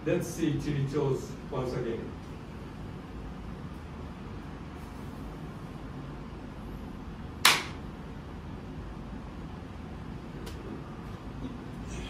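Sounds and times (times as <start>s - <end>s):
loud hand clap: 7.4s - 7.8s.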